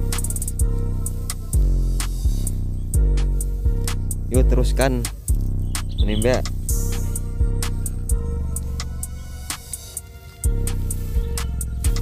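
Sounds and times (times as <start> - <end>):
drum and bass beat: 0.0 - 12.0.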